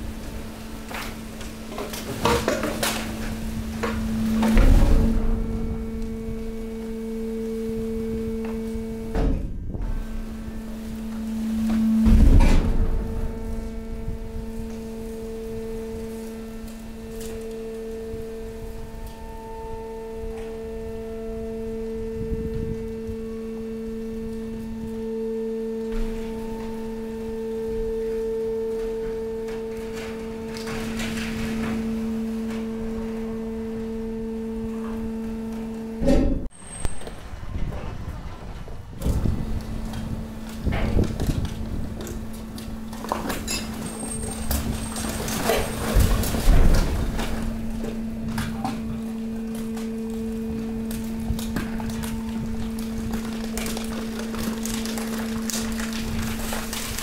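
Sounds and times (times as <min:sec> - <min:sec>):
hydraulic pump humming: 0:00.0 - 0:57.0
loud bangs: 0:03.0 - 0:08.0, 0:09.1 - 0:16.7.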